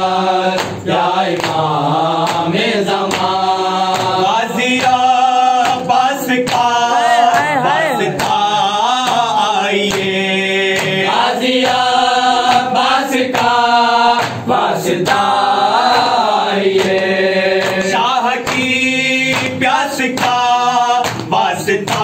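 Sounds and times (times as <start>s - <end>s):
men chanting in unison: 0.0s - 22.0s.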